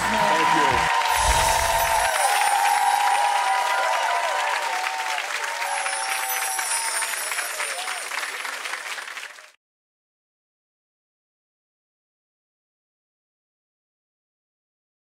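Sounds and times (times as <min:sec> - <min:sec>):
music: 0:00.0 - 0:03.7
studio audience applauding: 0:00.0 - 0:09.6.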